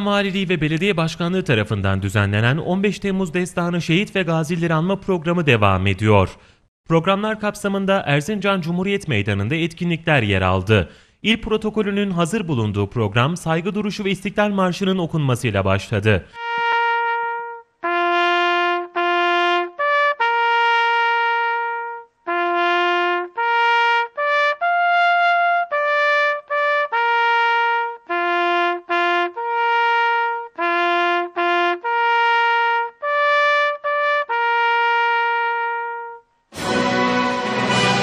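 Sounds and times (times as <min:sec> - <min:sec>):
slow trumpet bugle call: 0:16.4 - 0:38.0.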